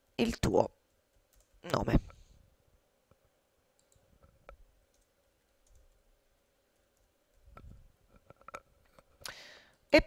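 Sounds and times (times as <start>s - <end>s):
keyboard keys typing: 1.2s - 1.9s, 3.8s - 4.1s, 4.9s - 6.1s.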